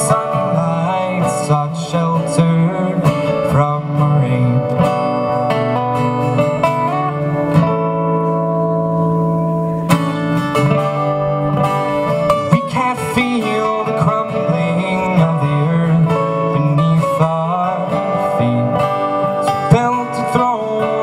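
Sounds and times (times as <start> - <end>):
acoustic guitar picking melody: 0.0 - 21.0
acoustic guitar strumming chords: 0.0 - 21.0.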